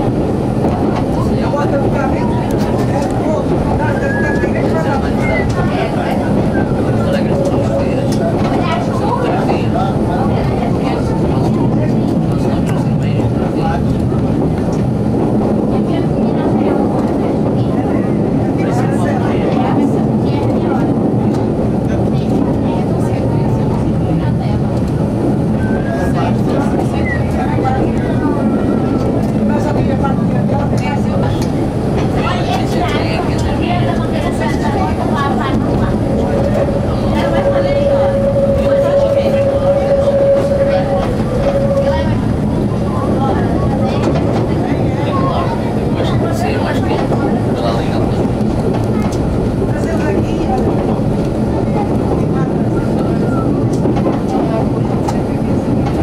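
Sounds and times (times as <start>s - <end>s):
diesel railcar engine: 0.0s - 56.0s.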